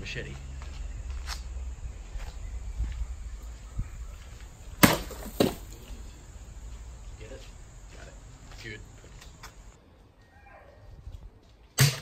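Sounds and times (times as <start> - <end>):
machete slicing plastic bottle: 4.8 - 5.7.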